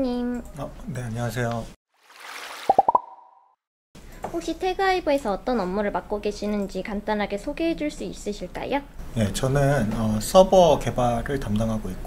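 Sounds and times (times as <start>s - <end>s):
popping blips rising in pitch: 2.7s - 3.5s.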